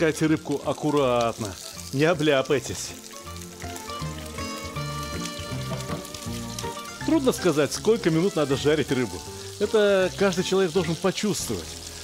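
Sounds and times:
background music with held notes: 0.0 - 12.0
fish sizzling in frying oil: 0.0 - 12.0.

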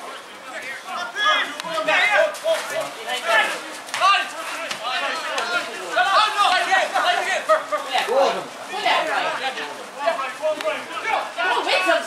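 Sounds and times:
men shouting: 0.8 - 12.0.

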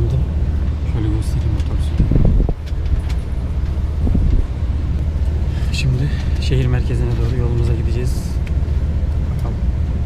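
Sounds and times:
bus engine running: 0.0 - 10.0.

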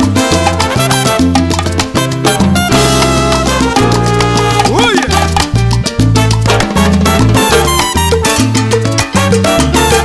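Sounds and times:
bass line: 0.0 - 10.0
salsa percussion: 0.0 - 10.0.

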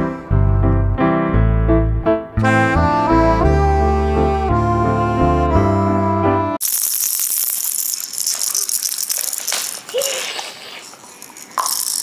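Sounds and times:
background music: 0.0 - 6.6
plastic toy rattle shaken: 6.6 - 12.0.

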